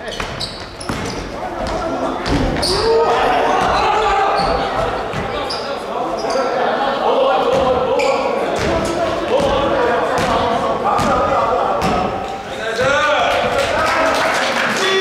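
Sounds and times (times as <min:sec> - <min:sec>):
players calling out: 0:00.0 - 0:15.0.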